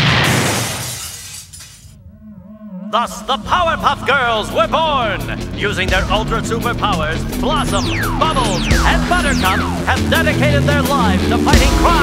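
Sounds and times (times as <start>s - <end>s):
debris scattering: 0.0s - 2.0s
glass shattering: 0.1s - 1.9s.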